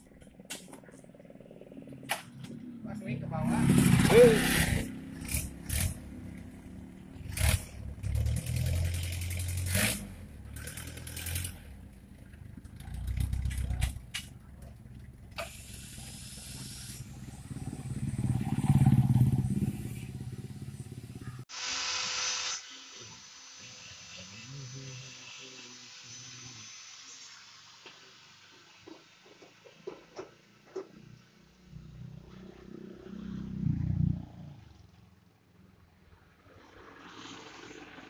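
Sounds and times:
jeep engine revving: 3.2s - 14.3s.

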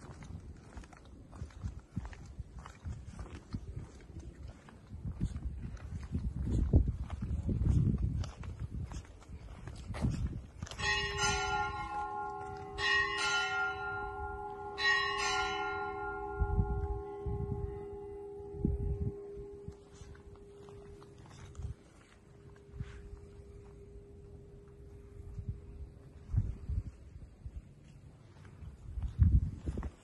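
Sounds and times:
church bell ringing: 10.6s - 26.2s
low hum: 15.9s - 29.8s.

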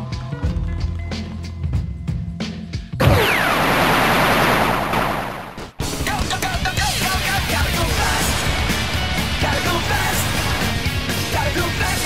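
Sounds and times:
noise blast with falling whistle: 3.0s - 5.3s
fast rock music: 5.7s - 12.0s.

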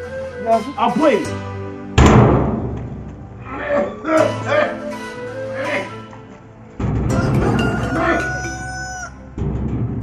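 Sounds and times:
background music with heavy bass: 0.0s - 10.0s
rooster crowing: 7.1s - 9.3s.

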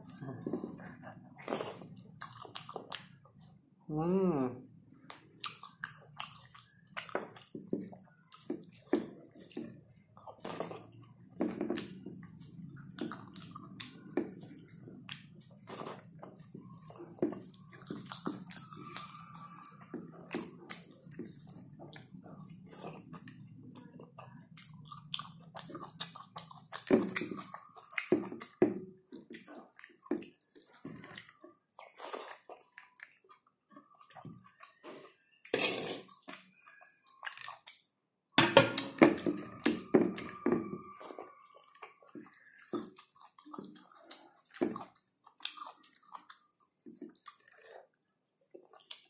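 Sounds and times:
wet chewing and lip-smacking: 0.0s - 3.6s, 5.0s - 35.4s, 36.1s - 38.0s, 39.2s - 49.0s.

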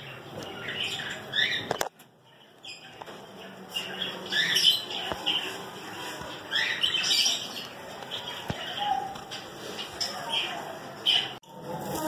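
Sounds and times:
small birds chirping: 0.0s - 11.4s.

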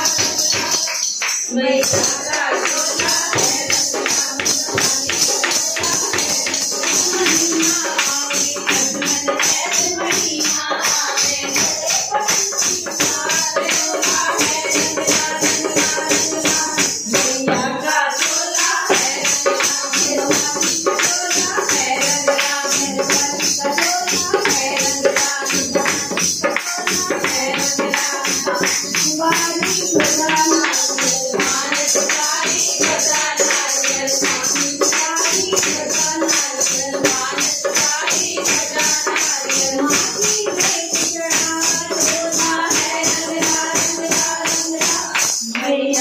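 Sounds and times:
hand drum fast rhythm: 0.0s - 46.0s
jingling percussion: 0.0s - 46.0s
women singing devotional song: 0.0s - 46.0s.

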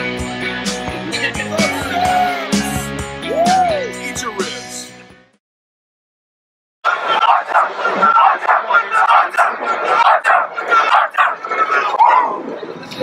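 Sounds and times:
crowd shouting and cheering: 0.0s - 4.7s, 6.8s - 12.8s.

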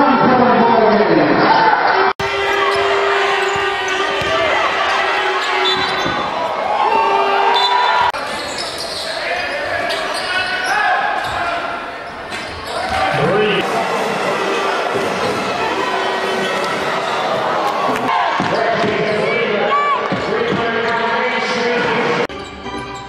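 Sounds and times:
crowd voices in large hall: 0.0s - 23.0s
basketball bouncing on court: 2.4s - 6.3s.

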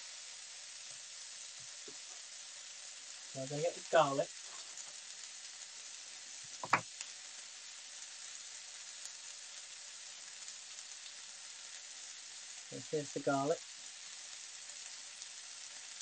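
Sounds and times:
food sizzling in a pan: 0.0s - 16.0s.

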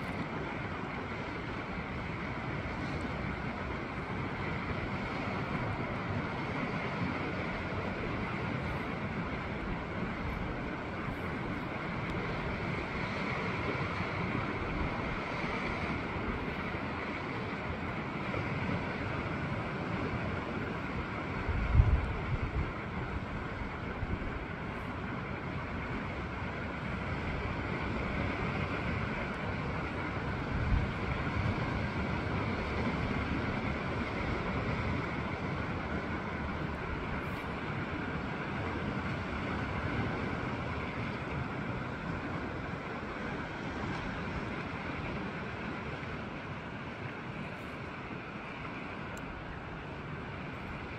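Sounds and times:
wind gusts buffeting microphone: 0.0s - 50.9s
wind rushing over microphone: 0.0s - 50.9s.

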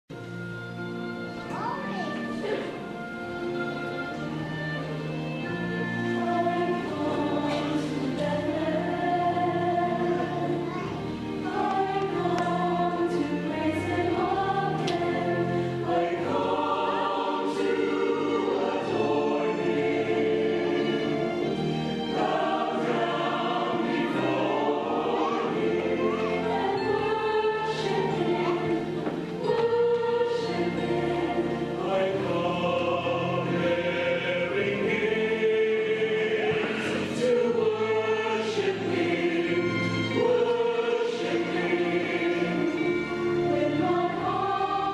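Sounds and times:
instrumental accompaniment: 0.1s - 44.9s
choir singing: 2.2s - 44.9s.

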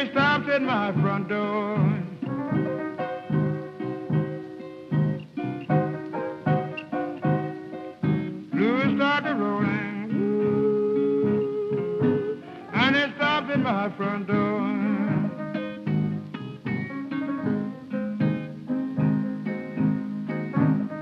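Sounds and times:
acoustic guitar chords: 0.0s - 21.0s
blues piano: 0.0s - 21.0s
voice holding a long note: 9.2s - 12.8s.

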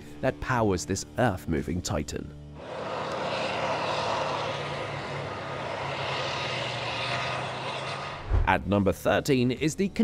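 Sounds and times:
bulldozer diesel engines running: 2.6s - 8.2s.

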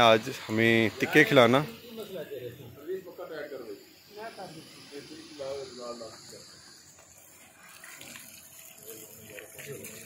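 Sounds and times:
faint voices talking: 0.0s - 10.0s
fan blowing hiss: 0.0s - 10.0s.

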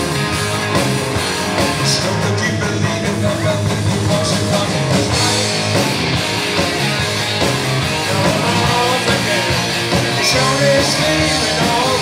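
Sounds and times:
bass guitar: 0.0s - 12.0s
drums: 0.0s - 12.0s
electric guitars: 0.0s - 12.0s.

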